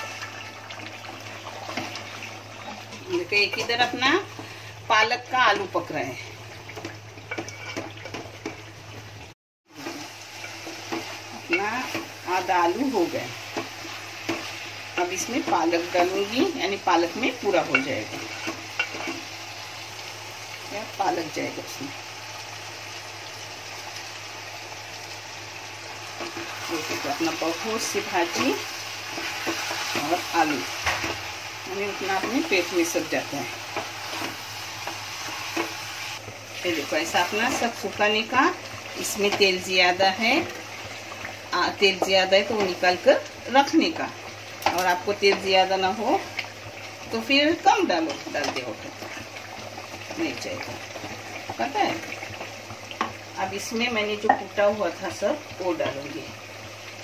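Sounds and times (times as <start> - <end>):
curry bubbling in a pot: 0.0 - 4.9, 21.9 - 57.0
potatoes and onions sizzling in oil: 0.0 - 57.0
spatula stirring: 6.8 - 8.6, 17.0 - 19.3.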